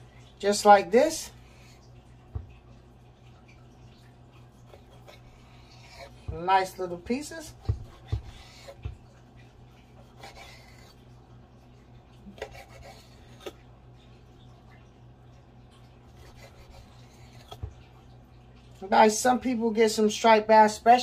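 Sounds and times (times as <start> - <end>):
knife slicing fish: 4.6 - 9.0, 9.9 - 11.0, 12.3 - 13.6, 16.1 - 17.7
knife knocking on cutting board: 7.5 - 9.0.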